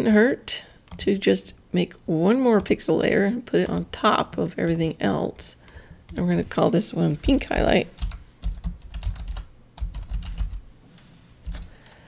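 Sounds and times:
computer keyboard typing: 7.2 - 10.6, 11.4 - 12.0.

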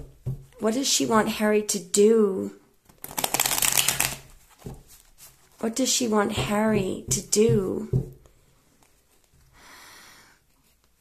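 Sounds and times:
cards being riffle-shuffled: 2.8 - 5.6.

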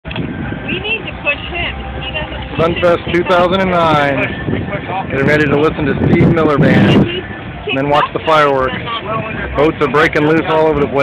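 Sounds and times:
steady low rumble: 0.1 - 11.0
people talking: 0.6 - 11.0.

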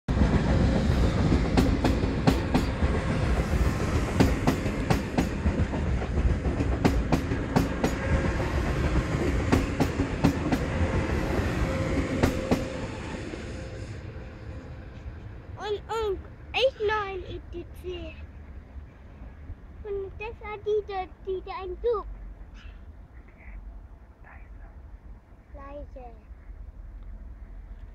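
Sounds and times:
train rolling rumble: 0.1 - 27.9.

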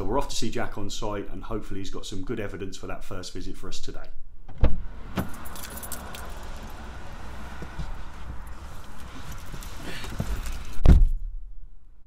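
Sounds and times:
light clicks and jingles: 5.2 - 10.8.

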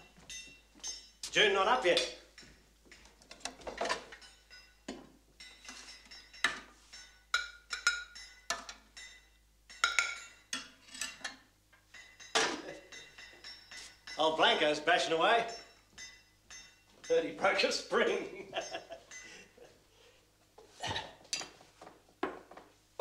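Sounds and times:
cup clinking on saucer: 3.7 - 14.2.

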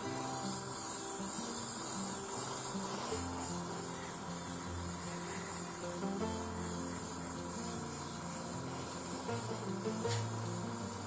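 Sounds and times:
airbrush spraying hiss: 0.0 - 11.0.

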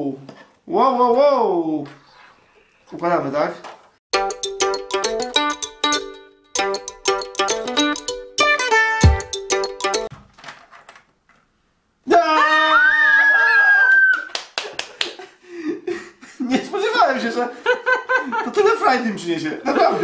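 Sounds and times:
people laughing: 17.5 - 18.8, 19.6 - 20.0.

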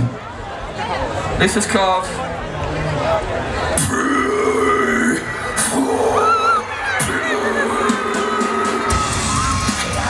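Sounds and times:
low guttural vocal growl: 3.6 - 8.9.

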